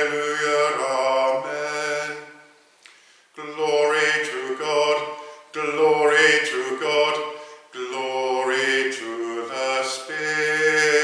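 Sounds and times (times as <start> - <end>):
man singing a chant: 0.0 - 2.6, 3.4 - 11.0
singer breathing: 2.6 - 3.4, 5.2 - 5.6, 7.3 - 7.8.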